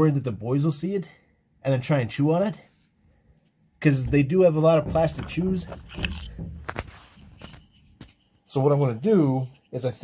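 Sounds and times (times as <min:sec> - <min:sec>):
plastic part rubbing: 0:04.7 - 0:08.5.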